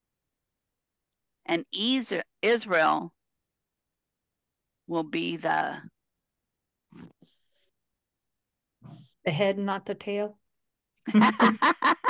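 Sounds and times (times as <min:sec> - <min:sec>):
person speaking: 0:04.9 - 0:05.8, 0:11.1 - 0:12.0.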